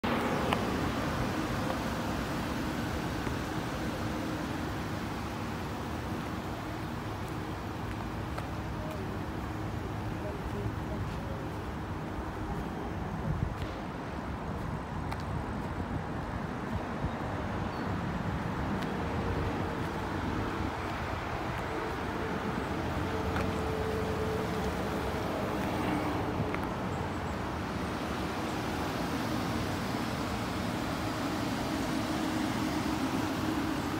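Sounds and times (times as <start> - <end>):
motor vehicle hum and rumble: 0.0 - 33.9
outdoor background noise: 0.0 - 33.9.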